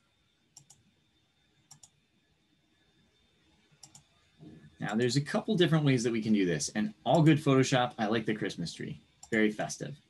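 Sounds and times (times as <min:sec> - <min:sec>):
computer mouse clicks: 0:00.6 - 0:00.8, 0:01.7 - 0:02.0, 0:03.7 - 0:04.3.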